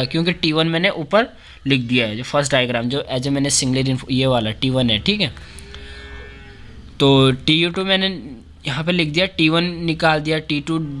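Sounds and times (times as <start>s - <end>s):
person speaking: 0.0s - 6.0s, 6.8s - 11.0s.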